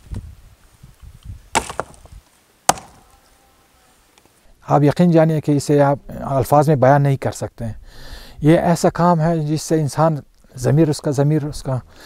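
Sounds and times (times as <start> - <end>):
rock knocking on rock: 1.6 - 3.0.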